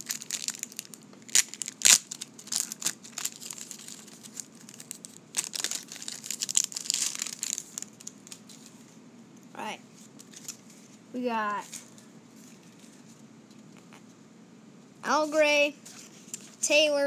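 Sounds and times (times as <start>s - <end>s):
plastic wrapper crinkling and tearing: 0.0s - 8.7s, 10.1s - 10.7s.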